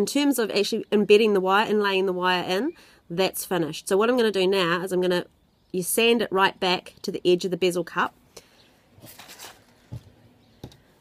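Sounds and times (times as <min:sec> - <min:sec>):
hands rustling on a table: 0:09.0 - 0:10.8.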